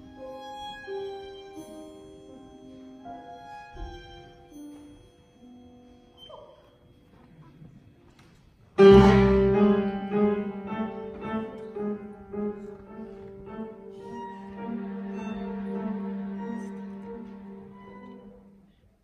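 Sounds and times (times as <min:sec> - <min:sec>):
string orchestra: 0:00.0 - 0:04.9, 0:08.8 - 0:19.0
piano chords: 0:00.0 - 0:07.2, 0:08.7 - 0:18.8.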